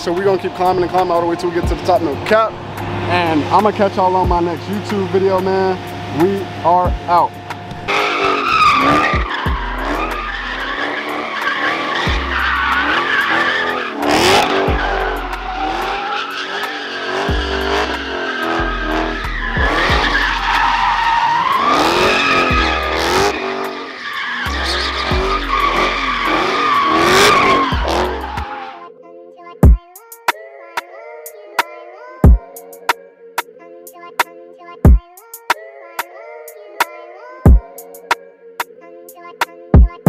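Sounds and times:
tires squealing: 0:00.0 - 0:28.9
car engine revving hard: 0:00.2 - 0:28.7.

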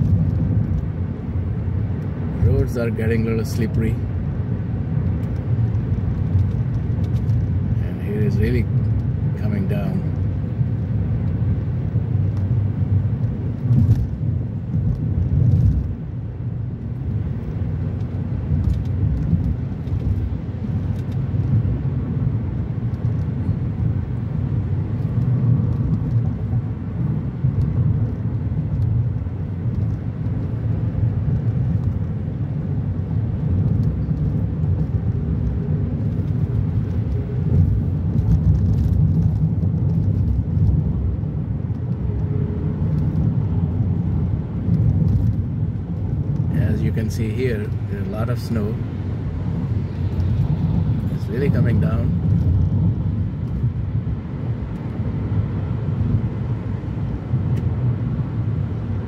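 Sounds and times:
car driving rumble: 0:00.0 - 0:59.0.

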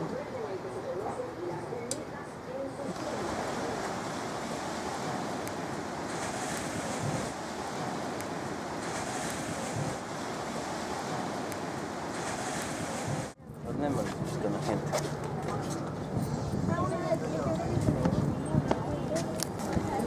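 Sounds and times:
surf washing on shore: 0:02.5 - 0:20.0
wind buffeting microphone: 0:02.9 - 0:20.0.

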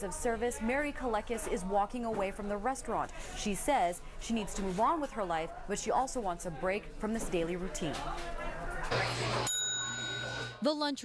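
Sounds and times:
service bell ringing: 0:09.5 - 0:10.6.

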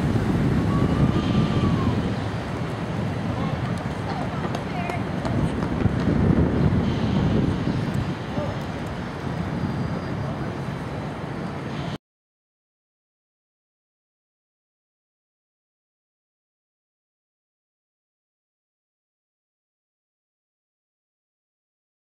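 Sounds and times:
passing traffic: 0:00.0 - 0:12.0
wind rumbling on microphone: 0:00.0 - 0:12.0.

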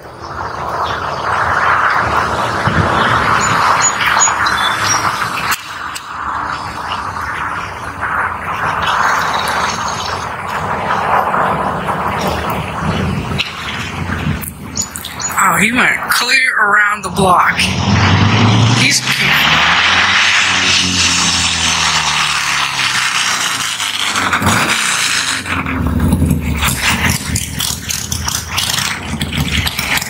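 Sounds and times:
motorcycle engine: 0:00.0 - 0:15.0, 0:17.6 - 0:30.0
bird chirps: 0:03.4 - 0:05.4, 0:14.7 - 0:15.6.

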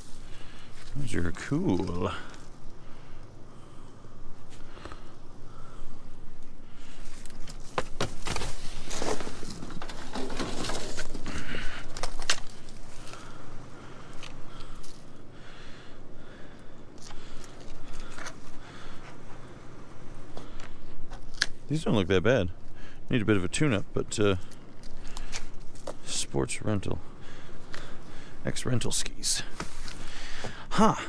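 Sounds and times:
plastic rustling: 0:06.9 - 0:13.4
knocks and scrapes in metal dumpster: 0:08.8 - 0:11.3.

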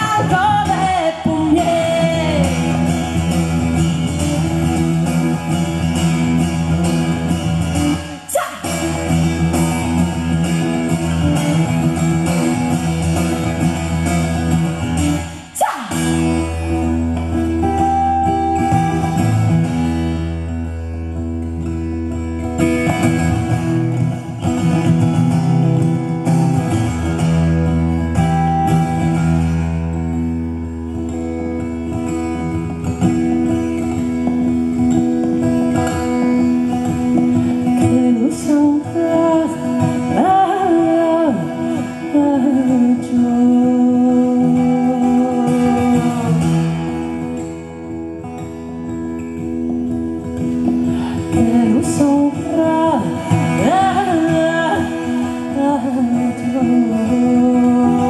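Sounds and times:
acoustic guitar playing: 0:00.0 - 0:58.0.

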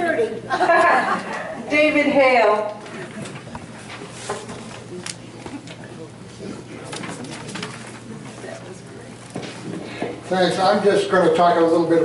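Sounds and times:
low indistinct voices: 0:02.8 - 0:10.3.

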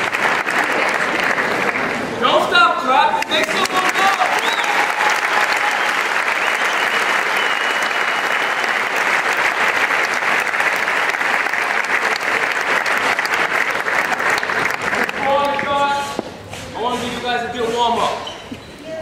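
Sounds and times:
audience applauding: 0:00.0 - 0:02.5, 0:03.1 - 0:15.8.

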